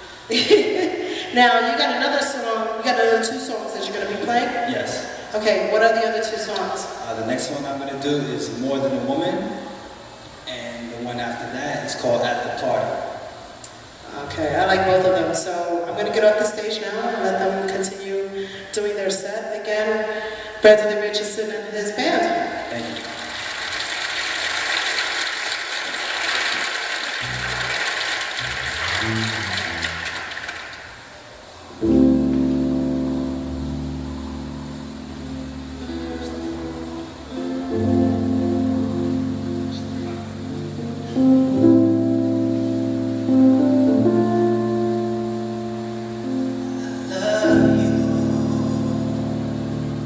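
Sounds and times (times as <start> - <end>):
electric keyboard chord over bass: 14.2 - 15.4, 27.2 - 30.4, 31.8 - 50.0
audience applause: 22.8 - 31.2.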